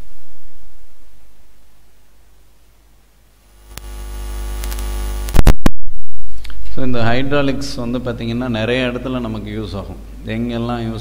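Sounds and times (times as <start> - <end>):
electrical hum and static: 0.0 - 11.0
click: 3.7 - 3.9, 4.6 - 5.6.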